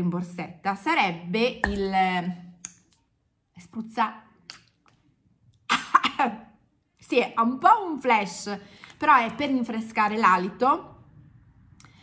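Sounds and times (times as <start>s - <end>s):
woman laughing and coughing: 5.7s - 6.4s.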